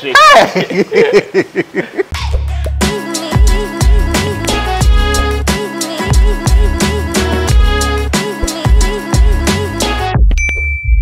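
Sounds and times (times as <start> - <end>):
background music with a beat: 2.2 - 11.0
notification bell ding: 10.4 - 11.0.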